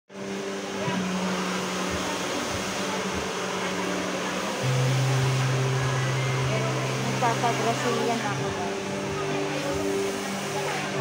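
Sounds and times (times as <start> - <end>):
electric motor and fan hum: 0.2 - 11.0.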